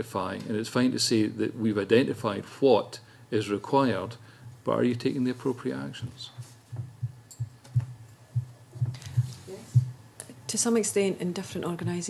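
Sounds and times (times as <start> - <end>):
low muffled thumps: 6.3 - 10.1, 11.5 - 12.0.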